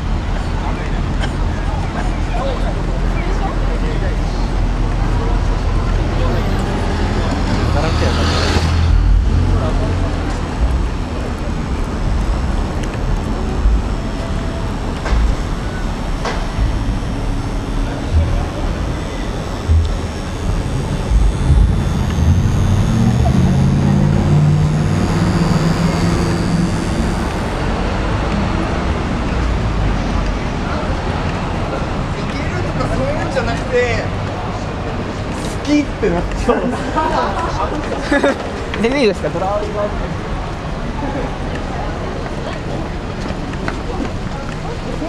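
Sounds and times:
people's voices: 0:00.0 - 0:45.0
traffic rumble: 0:00.0 - 0:45.0.

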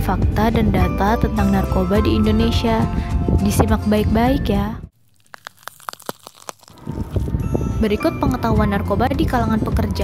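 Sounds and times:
music: 0:00.0 - 0:04.9, 0:07.0 - 0:10.0
sharp clicks and crackles: 0:05.1 - 0:07.3.

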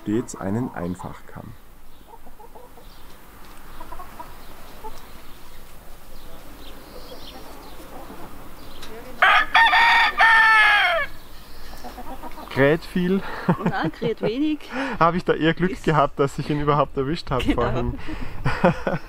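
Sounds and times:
rooster crowing: 0:09.2 - 0:11.2.

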